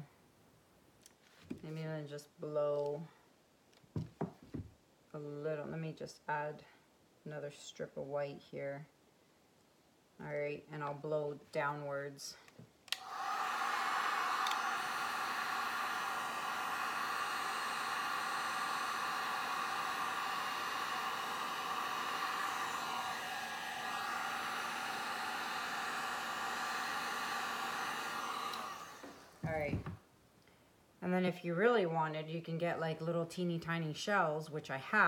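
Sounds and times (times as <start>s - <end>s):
heat gun blowing air: 12.9s - 30.0s.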